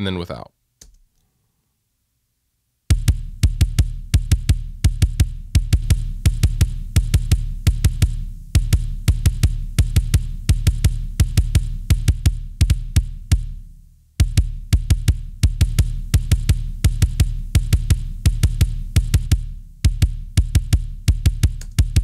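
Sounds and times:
drums ringing: 2.9s - 13.6s, 14.2s - 22.0s
kick drum fast hits: 2.9s - 22.0s.

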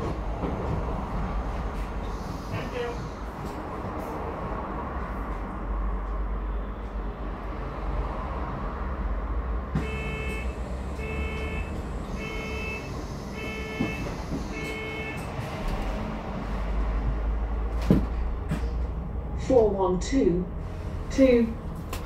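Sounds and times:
bus engine rumble: 0.0s - 22.0s.

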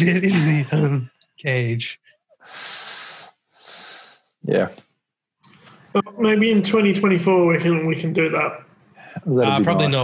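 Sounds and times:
person laughing under breath: 0.0s - 1.0s.

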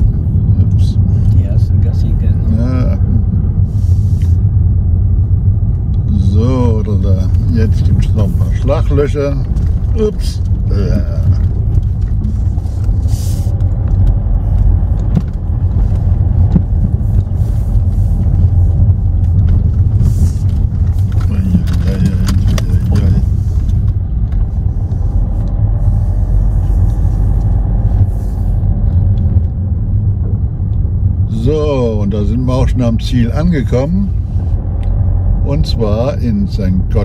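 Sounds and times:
car engine and tyres rumbling: 0.0s - 37.0s
gravel ticks and crackles: 6.8s - 25.7s.

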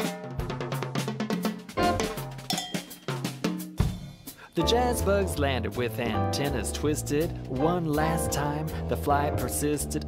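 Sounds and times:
drum kit beat: 0.0s - 10.0s
instrumental music: 0.0s - 10.0s
bass line: 1.8s - 2.2s, 4.6s - 10.0s.

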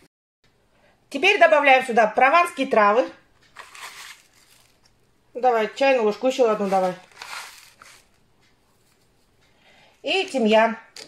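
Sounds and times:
faint handling noise: 3.4s - 5.0s, 6.4s - 9.5s
plastic packet crinkling: 3.5s - 5.0s, 6.5s - 8.2s.

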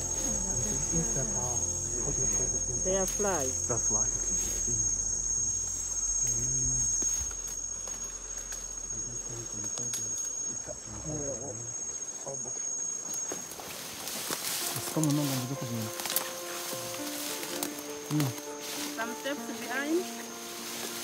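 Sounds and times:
faint low voices: 0.0s - 7.0s
high insect trill: 0.0s - 21.0s.

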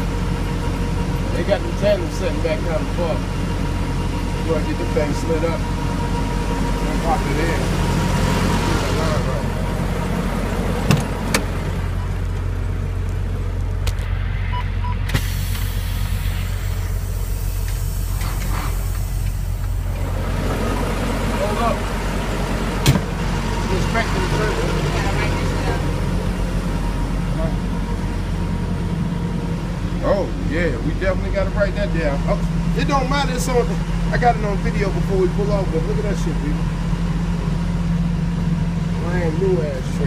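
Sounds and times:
diesel truck engine idling: 0.0s - 40.0s.

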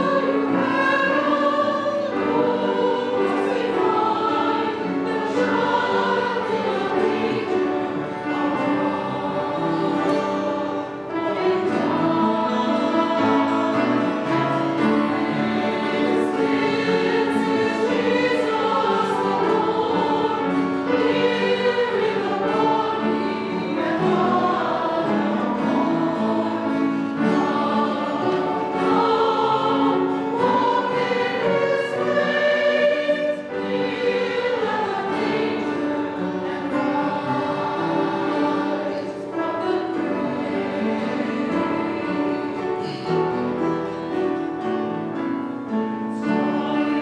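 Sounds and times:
mixed choir singing a hymn: 0.0s - 47.0s
piano accompaniment: 0.0s - 47.0s
soft guitar: 0.0s - 47.0s.

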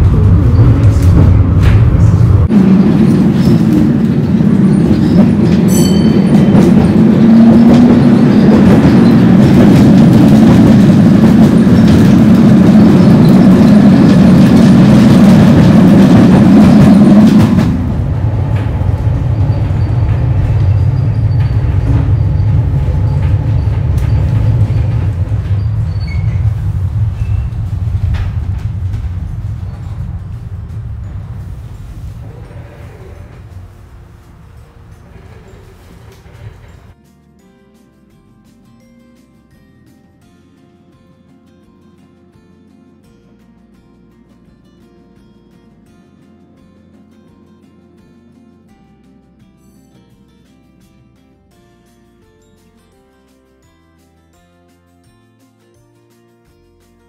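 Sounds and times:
wheels rumbling on track: 0.0s - 37.0s.

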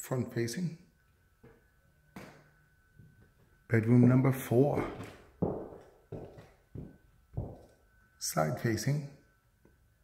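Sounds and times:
footsteps on bare floor: 1.4s - 7.8s.

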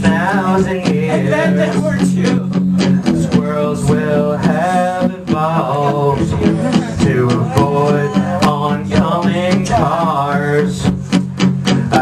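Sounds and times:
live band music with guitar: 0.0s - 12.0s.

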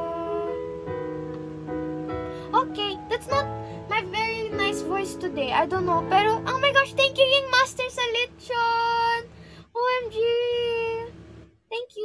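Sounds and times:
woman singing: 0.0s - 0.8s
backing track: 0.0s - 11.5s.

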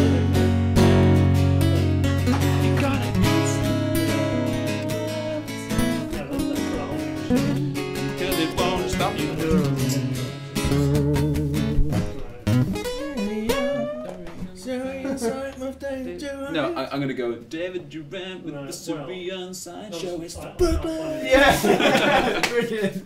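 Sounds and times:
acoustic guitars strummed: 0.0s - 16.5s
man singing loudly: 2.4s - 12.4s, 13.0s - 16.8s.

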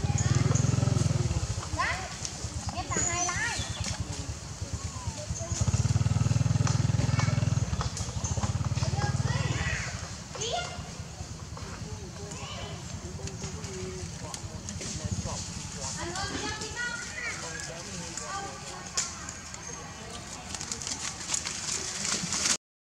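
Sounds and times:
low throbbing engine hum: 0.0s - 16.8s.

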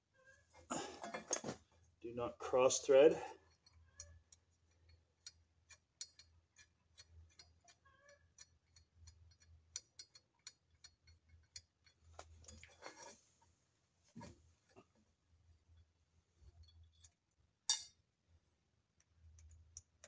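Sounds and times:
small metal clicks of bolts: 3.4s - 12.7s, 18.9s - 20.0s.

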